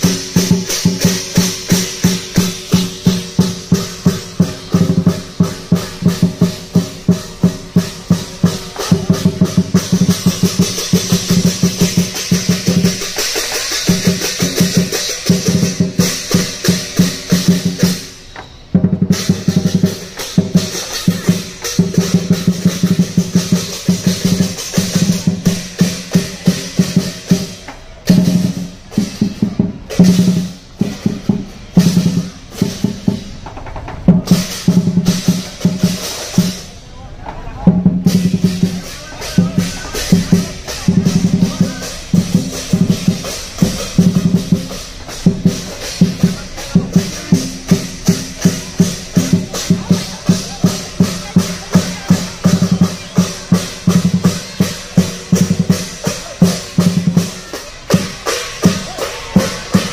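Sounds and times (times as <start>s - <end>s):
large drum beaten fast: 0.0s - 36.9s, 37.5s - 59.9s
crashing cymbals: 0.0s - 37.0s, 37.8s - 59.9s.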